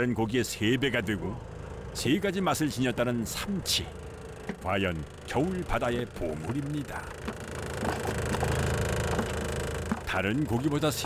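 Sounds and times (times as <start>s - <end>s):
boat engine running: 0.0s - 11.0s
fish thrashing in plastic tub: 7.2s - 10.2s.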